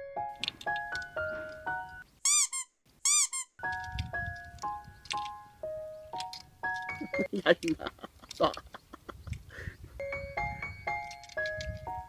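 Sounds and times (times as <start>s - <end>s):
light music with bell-like notes: 0.0s - 2.0s, 3.6s - 7.4s, 10.0s - 12.0s
high squeaky sound effects: 1.2s - 3.7s.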